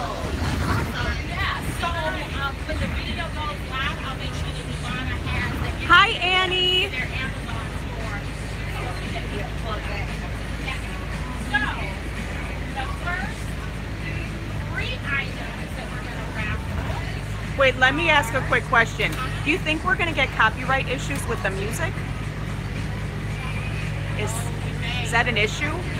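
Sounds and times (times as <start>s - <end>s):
bus engine and road rumble: 0.0s - 25.9s
people chattering: 0.0s - 25.9s.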